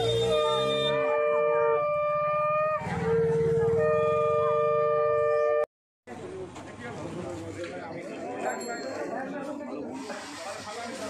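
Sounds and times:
long blown horn notes: 0.0 - 5.7.

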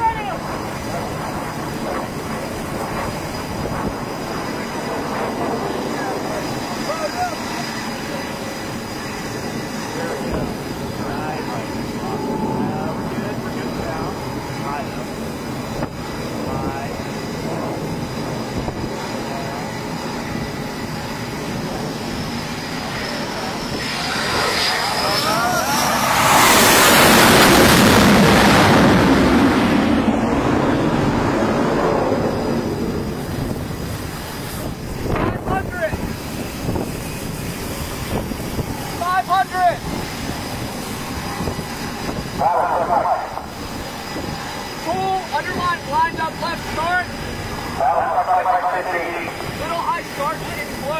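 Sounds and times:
jet aircraft engine: 0.0 - 50.9
wind noise: 0.0 - 50.9.

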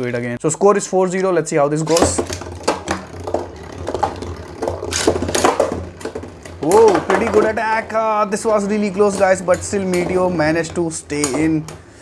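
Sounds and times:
spinning tops clashing clicks: 1.9 - 12.0
spinning tops whirring: 1.9 - 12.0.

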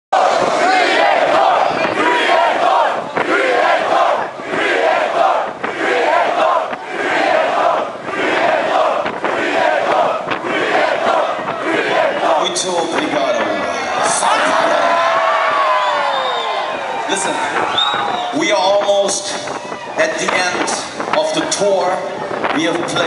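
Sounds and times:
crowd chanting and shouting: 0.1 - 23.0.

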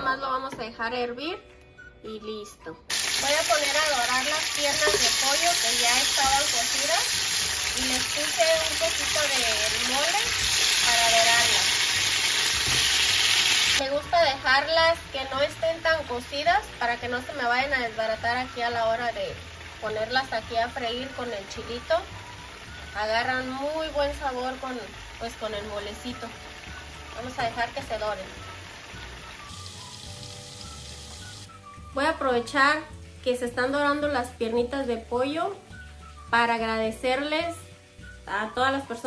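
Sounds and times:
soft background music: 0.0 - 39.0
chicken sizzling in hot oil: 2.9 - 31.8.

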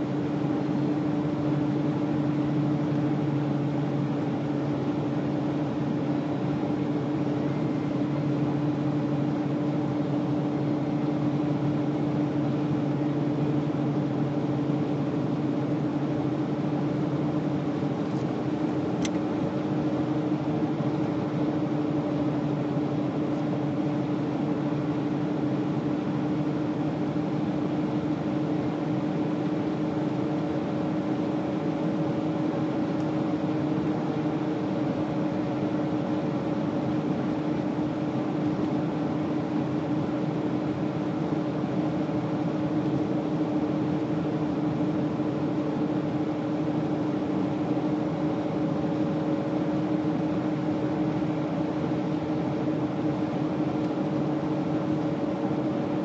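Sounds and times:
car engine drone: 0.0 - 56.0.

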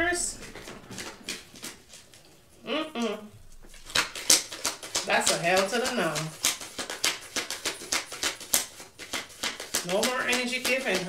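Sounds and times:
cards being shuffled by hand: 0.1 - 2.3, 3.6 - 11.0.

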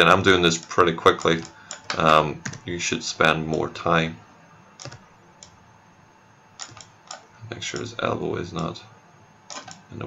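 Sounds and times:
soft computer clicks: 1.2 - 2.6, 4.8 - 5.6, 6.6 - 7.9, 9.5 - 9.8.

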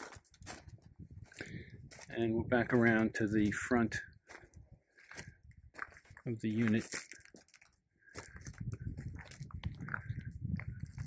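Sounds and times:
footsteps crunching on gravel: 0.0 - 11.0.

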